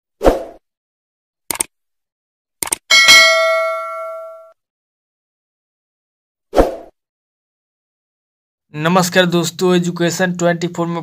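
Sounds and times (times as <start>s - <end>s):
notification bell ding: 2.9s - 4.6s.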